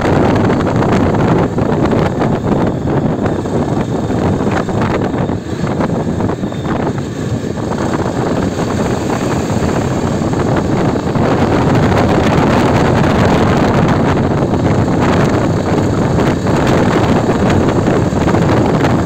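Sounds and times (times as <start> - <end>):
motorcycle engine running: 0.0 - 19.0
wind rushing over microphone: 0.0 - 19.0.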